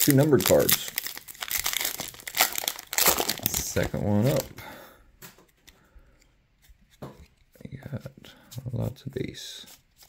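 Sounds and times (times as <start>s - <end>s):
wrapper tearing open: 0.0s - 4.5s
plastic wrapper crinkling: 0.0s - 4.6s.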